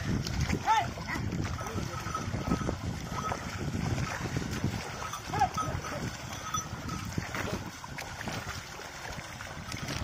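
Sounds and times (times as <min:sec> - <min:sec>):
hooves and wheels splashing in mud: 0:00.0 - 0:10.0.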